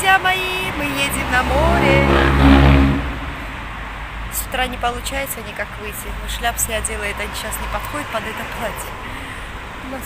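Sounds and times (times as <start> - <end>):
vehicle engine running: 0.5 - 3.8.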